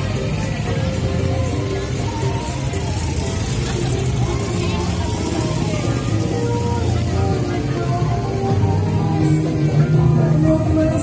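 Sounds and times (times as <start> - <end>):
music with deep bass: 0.0 - 11.0
voices: 0.0 - 11.0.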